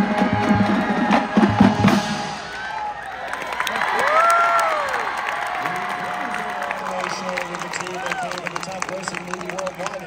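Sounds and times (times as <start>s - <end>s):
drums: 0.0s - 3.0s
crowd applauding and cheering: 0.3s - 10.0s.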